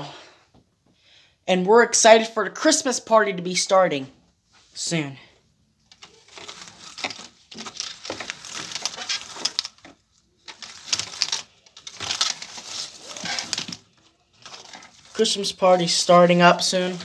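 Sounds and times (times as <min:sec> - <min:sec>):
phone handling rustling and clicks: 0:05.8 - 0:15.1.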